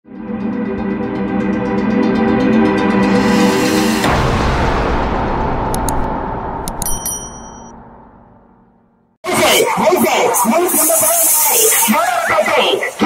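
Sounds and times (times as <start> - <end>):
high chimes: 6.7 - 7.7.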